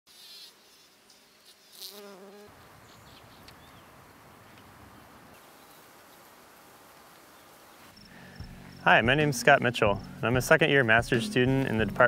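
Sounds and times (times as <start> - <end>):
bee buzzing: 0.1 - 3.4
faint outdoor background: 0.1 - 12.0.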